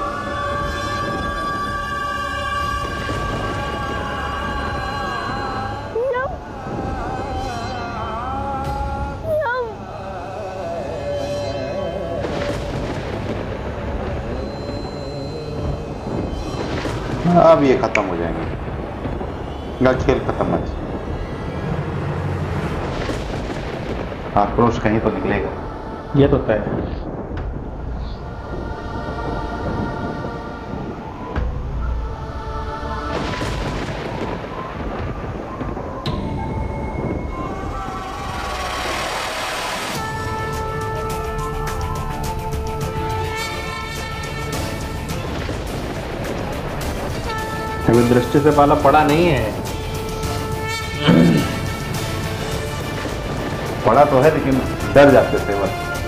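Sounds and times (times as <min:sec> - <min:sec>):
deep thunder-like rumble: 0:00.0 - 0:56.0
sharp hit: 0:27.1 - 0:56.0.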